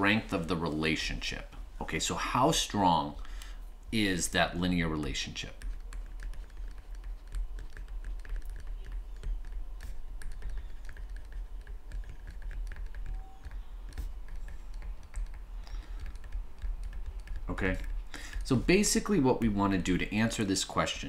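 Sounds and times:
steady low hum: 0.0s - 21.0s
stylus tapping on tablet screen: 5.6s - 18.4s.

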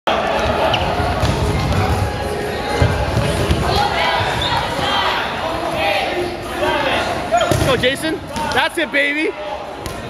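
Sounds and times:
voices in echoing hall: 0.1s - 10.0s.

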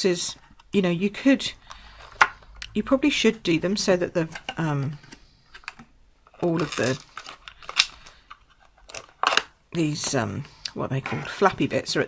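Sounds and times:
stiff plastic clicks and crackles: 4.4s - 9.6s.

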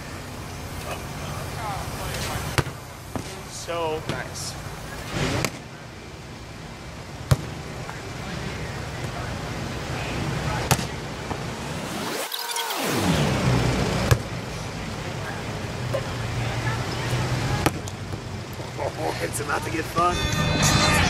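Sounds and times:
volleyball hand slaps: 2.6s - 3.4s, 7.3s - 7.5s, 10.7s - 11.4s
passing vehicle rushing: 7.5s - 21.0s.

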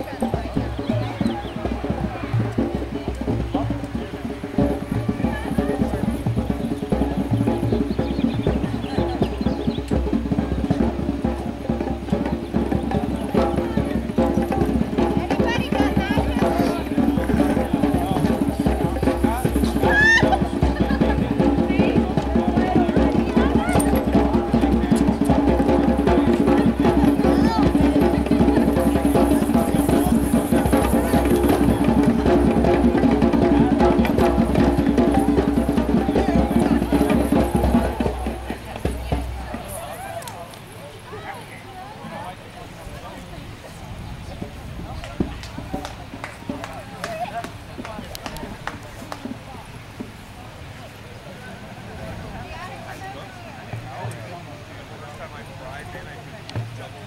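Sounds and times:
steady drum beat: 0.0s - 42.5s, 44.4s - 50.2s, 55.4s - 57.0s.

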